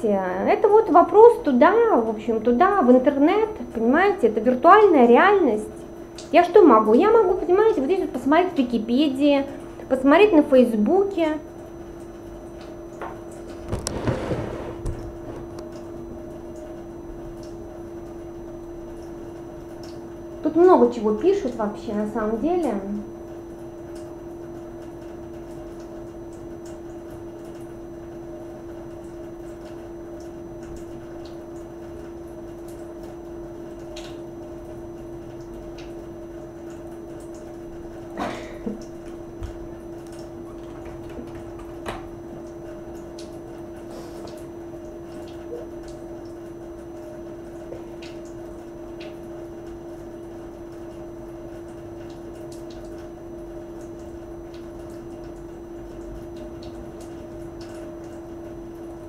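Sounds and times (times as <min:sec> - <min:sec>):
steady hum: 0:00.0 - 0:59.0.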